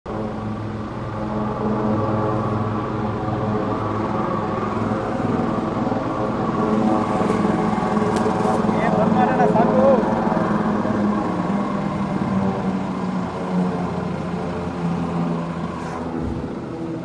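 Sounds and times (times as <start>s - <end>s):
helicopter engine and rotor drone: 0.0s - 17.0s.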